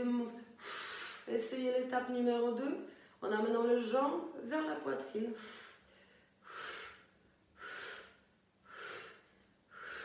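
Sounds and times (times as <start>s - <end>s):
woman exhaling forcefully: 6.4s - 10.0s.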